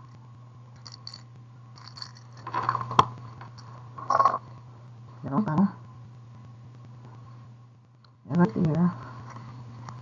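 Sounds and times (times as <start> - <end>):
steady low hum: 0.0 - 10.0
glass beads rattling in plastic tub: 0.8 - 1.2, 1.8 - 2.8.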